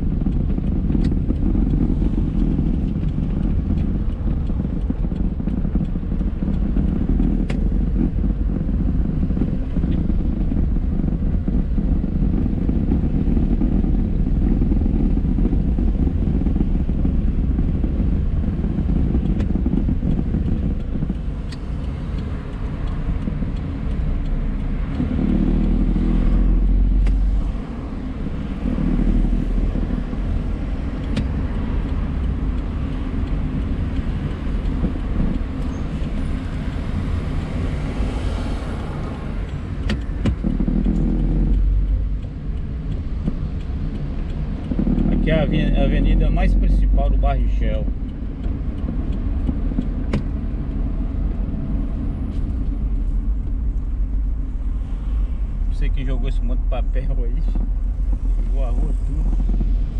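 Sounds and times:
car engine: 0.0 - 59.9.

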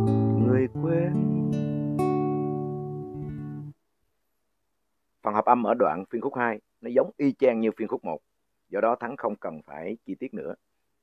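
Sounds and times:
acoustic guitar strumming chords: 0.0 - 3.7.

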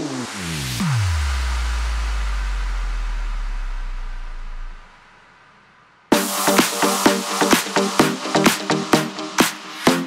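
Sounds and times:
deep electronic bass tone: 0.0 - 5.0.

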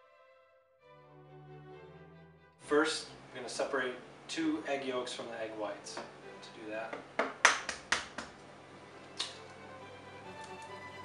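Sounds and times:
egg shell tapping on hard surface: 6.9 - 7.5.

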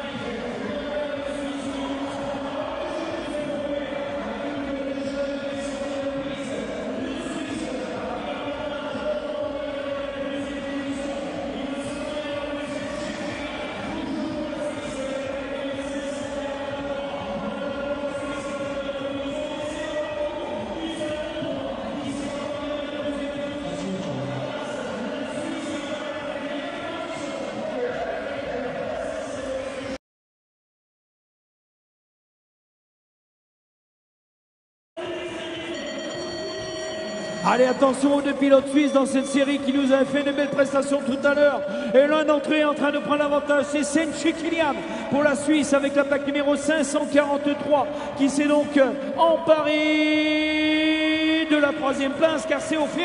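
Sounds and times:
indoor arena background hum: 0.0 - 30.0, 35.0 - 53.0.

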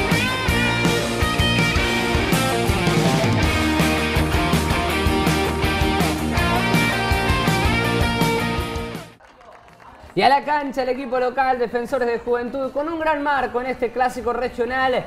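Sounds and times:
rock music with guitar: 0.0 - 9.2.

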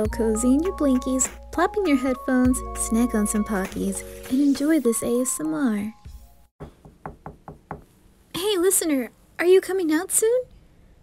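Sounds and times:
knocking on a door: 6.6 - 7.9.

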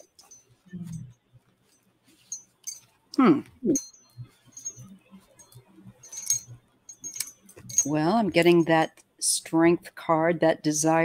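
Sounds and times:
woman speaking: 3.2 - 3.8, 7.7 - 11.0
small metal pieces clinking: 6.1 - 7.9.

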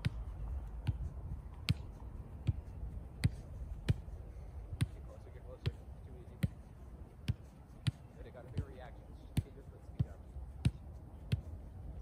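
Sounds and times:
soccer ball kicks: 0.0 - 4.1, 4.8 - 12.0.

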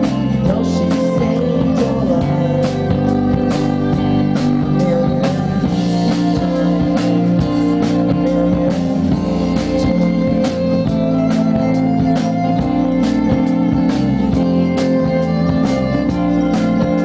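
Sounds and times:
drum kit steady beat: 0.0 - 17.0
electric guitars: 0.0 - 17.0
violin: 0.0 - 17.0.

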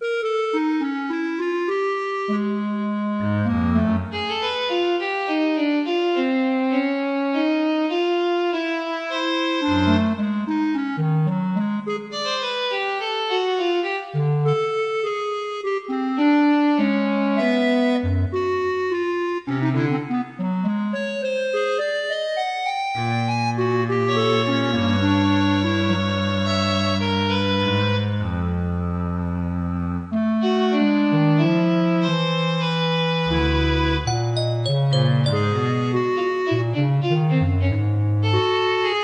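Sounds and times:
instrumental background music: 0.0 - 15.6, 16.8 - 30.2, 31.1 - 39.0.

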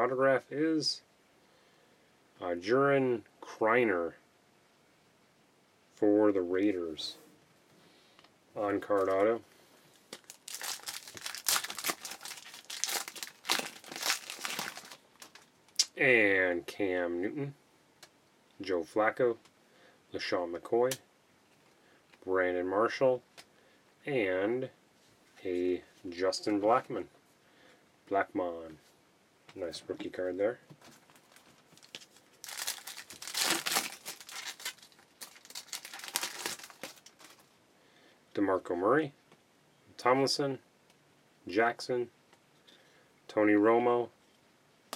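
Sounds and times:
foil wrapper tearing and crinkling: 10.1 - 15.5, 31.2 - 37.5.

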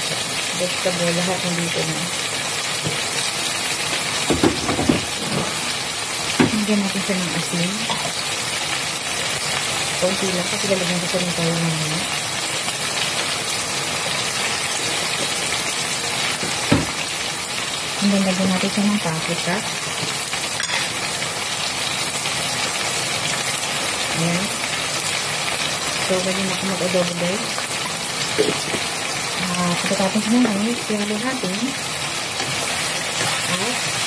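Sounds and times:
food sizzling in a pan: 0.0 - 34.0.

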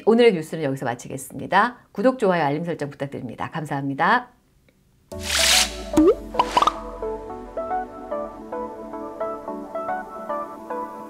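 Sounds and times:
light plucked-string music: 5.1 - 9.8
rising cartoon pop effect: 5.2 - 6.8
quick popping blips: 5.9 - 6.8.

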